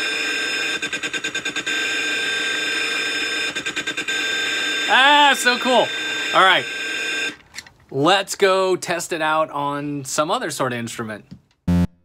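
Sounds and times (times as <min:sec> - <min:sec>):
buzzy glitch tone: 0:11.7 - 0:12.0.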